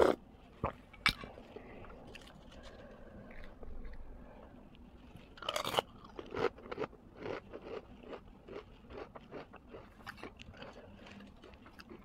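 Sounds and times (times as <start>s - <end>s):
person crunching food: 0.0s - 4.2s, 5.0s - 12.0s.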